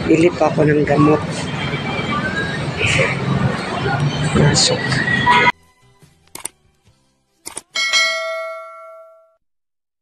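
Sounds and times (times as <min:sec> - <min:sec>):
notification bell ding: 0:07.8 - 0:09.4.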